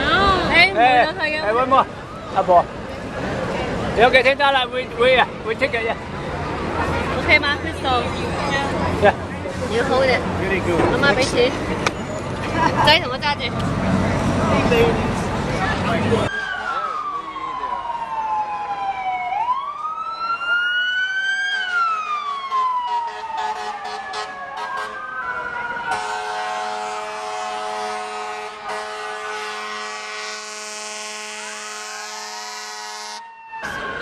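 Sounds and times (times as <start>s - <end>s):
fire truck sirens wailing: 0.0s - 12.5s, 13.9s - 34.0s
long steady horn blast: 22.5s - 25.0s, 25.9s - 33.3s.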